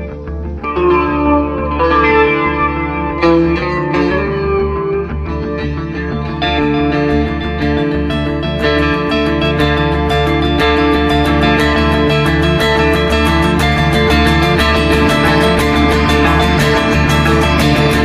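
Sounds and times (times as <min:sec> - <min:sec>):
bass guitar: 0:00.0 - 0:18.0
electric guitars sustained notes: 0:00.0 - 0:18.0.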